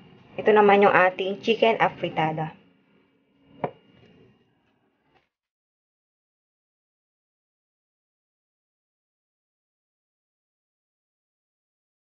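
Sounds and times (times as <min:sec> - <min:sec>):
hard object knocking on counter: 0:03.6 - 0:03.8.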